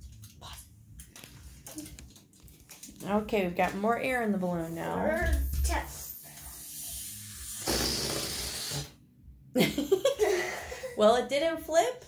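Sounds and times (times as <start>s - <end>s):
foil crinkling and tapping: 1.0s - 4.4s.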